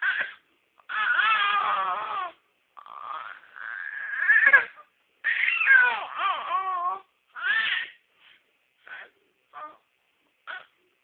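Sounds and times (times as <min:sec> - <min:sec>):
baby crying: 0:00.0 - 0:08.0, 0:08.9 - 0:09.9, 0:10.5 - 0:10.8.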